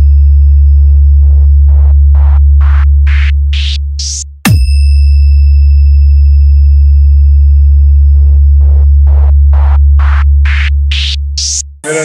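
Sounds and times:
deep electronic bass tone: 0.0 - 4.5, 5.5 - 12.0.

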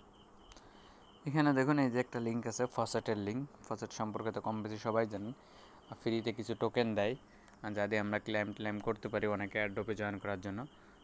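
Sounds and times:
man speaking: 1.2 - 10.7.

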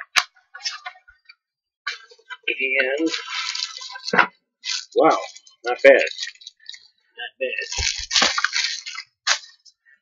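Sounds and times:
plastic and cardboard rustling: 1.9 - 6.9, 7.5 - 9.8.

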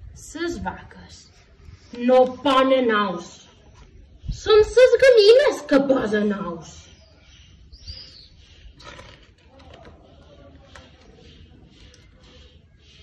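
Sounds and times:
soft high bird chirps: 3.5 - 13.0.

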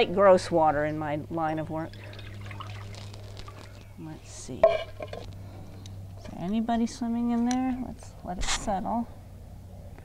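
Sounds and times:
water pouring into bowl: 1.9 - 3.8.

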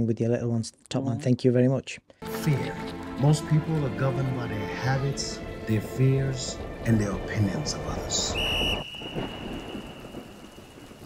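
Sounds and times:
steady rain: 2.2 - 11.0.

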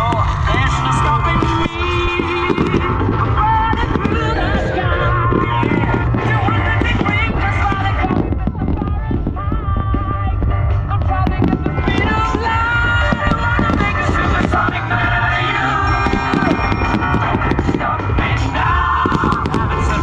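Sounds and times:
fireworks bursting and crackling: 0.0 - 20.0
loud music over sound system: 0.0 - 20.0.

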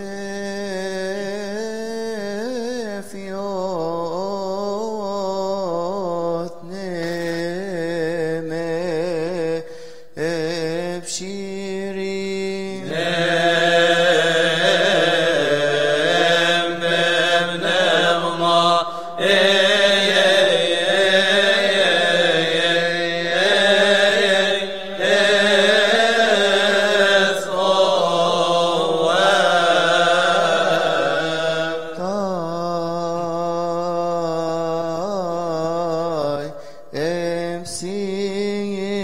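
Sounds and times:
voices chanting melismatic phrases: 12.8 - 32.0.

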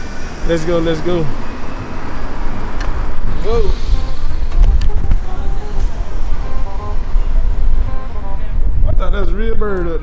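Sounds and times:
faint pitched tones: 0.0 - 9.4
wind rumbling on microphone: 2.5 - 10.0.

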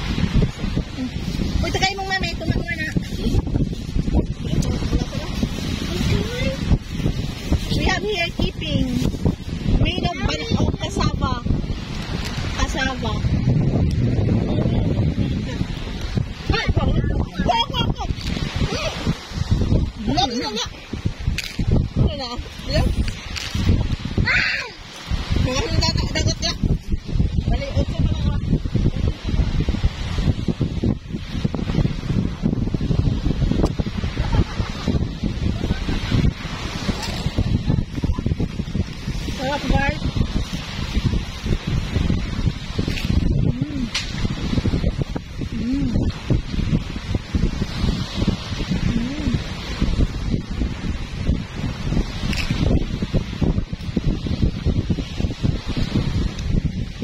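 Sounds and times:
small waves washing onto shore: 0.0 - 57.0
surf: 0.0 - 57.0
wind buffeting microphone: 0.0 - 57.0.

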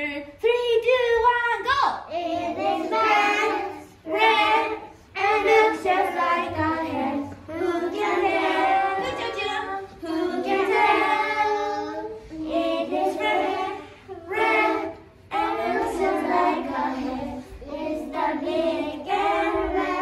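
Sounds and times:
children singing: 2.1 - 20.0.

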